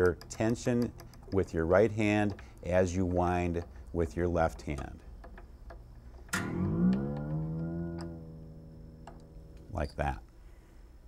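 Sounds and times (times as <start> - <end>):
string crank clicks: 0.0 - 10.1
guitar string ringing rising pitch: 6.3 - 10.0.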